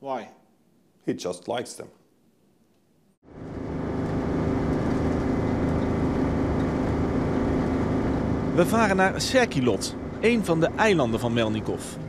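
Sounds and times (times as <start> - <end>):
boat engine droning: 3.2 - 12.0
hull rushing through water: 3.4 - 12.0.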